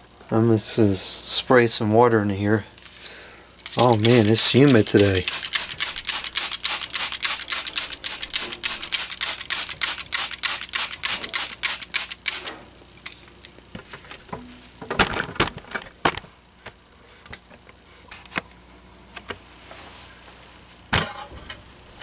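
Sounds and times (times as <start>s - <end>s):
handling clicks: 3.6s - 12.5s
spray bottle squirting: 3.6s - 12.6s.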